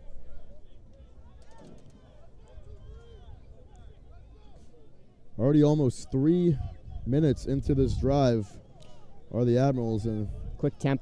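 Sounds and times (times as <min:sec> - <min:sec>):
faint clicks: 0:00.9 - 0:02.9.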